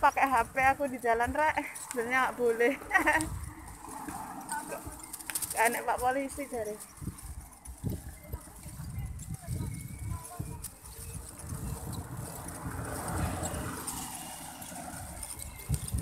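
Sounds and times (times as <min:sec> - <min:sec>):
passing vehicle: 0:00.0 - 0:16.0
wind buffeting microphone: 0:00.0 - 0:16.0.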